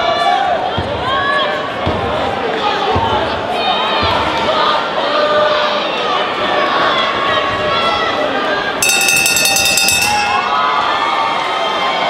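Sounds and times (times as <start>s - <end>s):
crowd cheering and shouting: 3.4s - 12.0s
boxing bell ringing rapidly: 8.8s - 10.9s.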